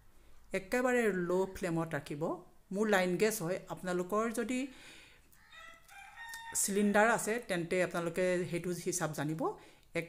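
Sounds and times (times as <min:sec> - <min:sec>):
speech: 0:00.5 - 0:04.7, 0:06.6 - 0:10.0.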